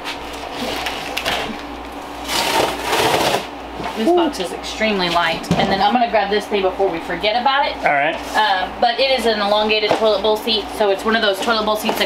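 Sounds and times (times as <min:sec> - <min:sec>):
cardboard boxes scraping: 0:02.2 - 0:03.5.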